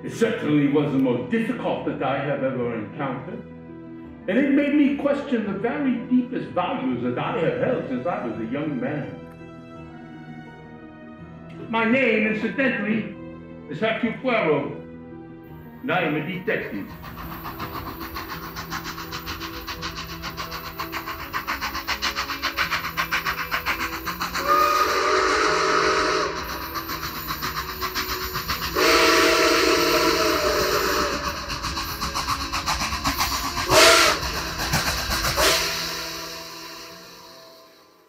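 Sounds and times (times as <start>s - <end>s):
steam locomotive chuffing: 16.0s - 38.0s
train whistle blasts: 24.3s - 31.6s, 33.6s - 34.6s, 35.3s - 38.0s.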